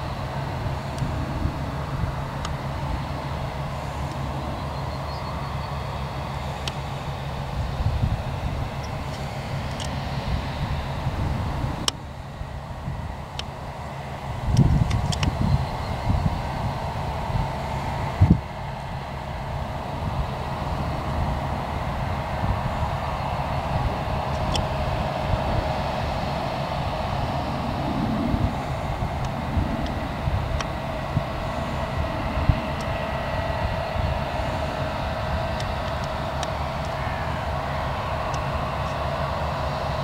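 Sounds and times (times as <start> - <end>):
droning hum of farm machinery: 0.0 - 40.0.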